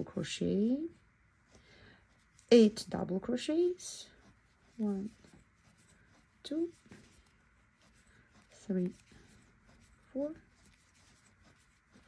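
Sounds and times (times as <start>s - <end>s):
yarn rustling over crochet hook: 0.0s - 12.0s
person speaking: 2.3s - 12.0s.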